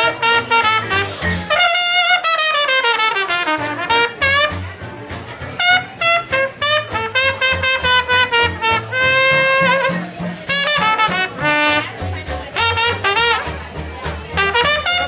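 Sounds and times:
cornet solo: 0:00.0 - 0:04.8, 0:05.4 - 0:15.0
jazz rhythm section: 0:00.0 - 0:15.0.

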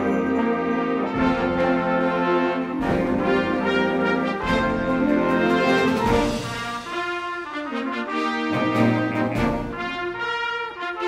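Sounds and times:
low brass: 0:00.0 - 0:11.0.

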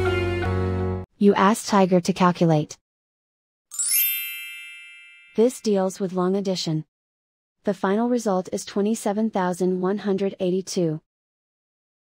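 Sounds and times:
bell-like chime ding: 0:03.7 - 0:05.6.

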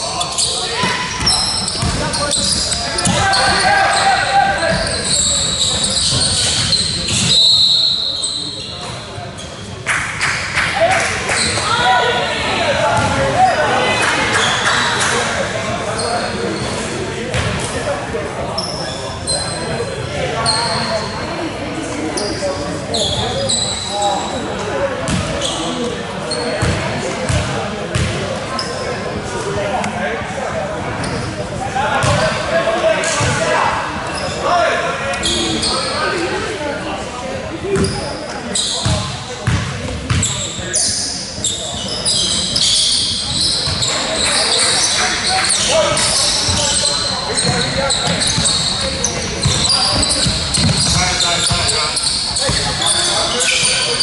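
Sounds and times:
people talking in echoing gym: 0:00.0 - 0:54.0
short high squeaks: 0:00.1 - 0:09.5
ball bouncing on wooden court: 0:01.2 - 0:02.1, 0:13.0 - 0:13.2, 0:25.1 - 0:25.3, 0:26.6 - 0:28.2, 0:38.8 - 0:40.3, 0:47.4 - 0:51.7.

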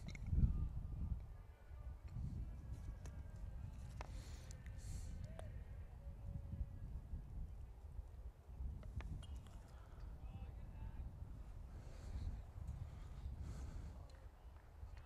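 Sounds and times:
faint distant voices: 0:00.4 - 0:08.5.

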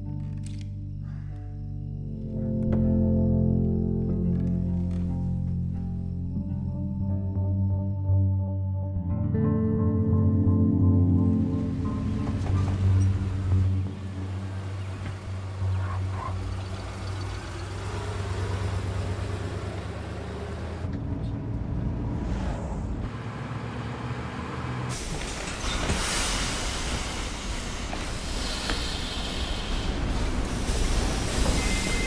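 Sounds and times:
background music: 0:00.0 - 0:18.6
truck engine running: 0:11.6 - 0:20.9
loud hiss: 0:24.9 - 0:32.0.

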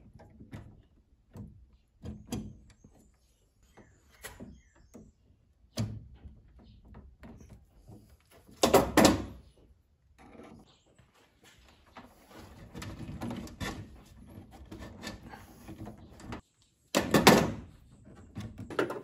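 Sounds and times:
small knocks clicks and rustles: 0:00.0 - 0:05.1, 0:10.1 - 0:19.0.

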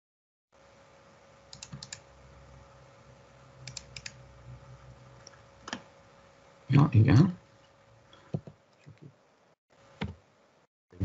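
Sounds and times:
low steady hum: 0:00.6 - 0:11.0
computer mouse and keyboard clicks: 0:01.5 - 0:02.0, 0:03.7 - 0:04.2.

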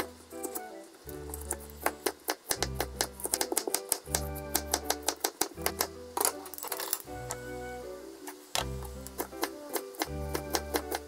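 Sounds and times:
background music: 0:00.0 - 0:11.0
knife chopping on cutting board: 0:01.4 - 0:05.9.

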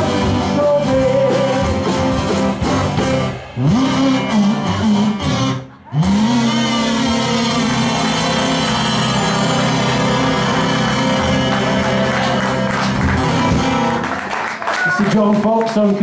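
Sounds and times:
acoustic blues band chord: 0:00.0 - 0:14.1.

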